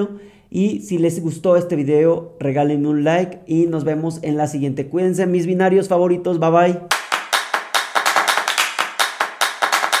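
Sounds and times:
rapid hand clapping: 6.9 - 10.0.

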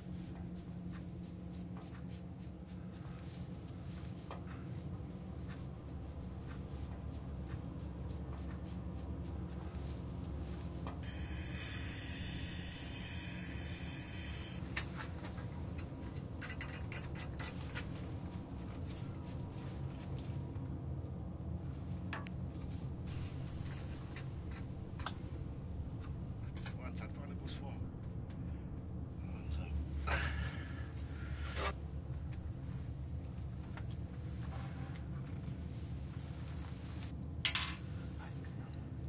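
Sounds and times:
steady low hum: 0.0 - 16.4
hiss: 11.0 - 14.6.

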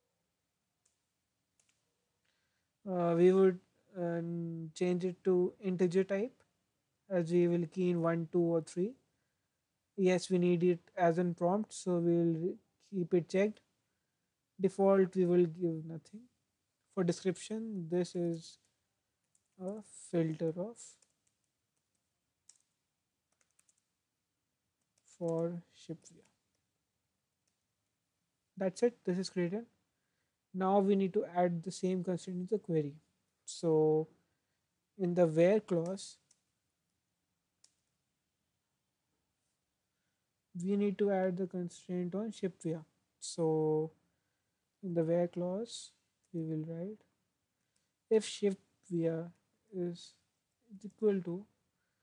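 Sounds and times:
computer keyboard clicks: 21.0 - 23.9.

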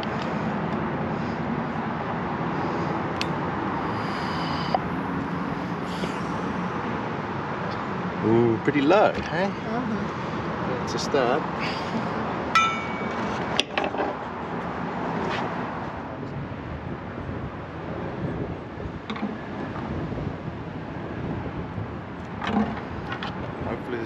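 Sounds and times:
ringing metal clink: 12.5 - 13.3.

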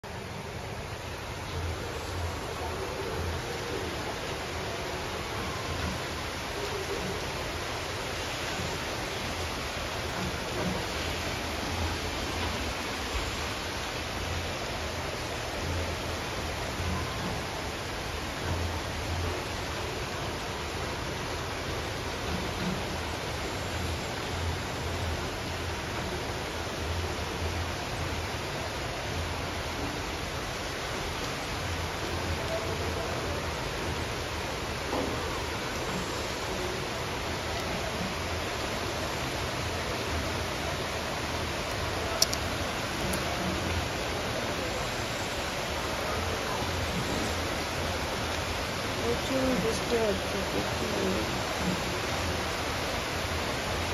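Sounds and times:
heavy rain falling: 0.0 - 53.9.

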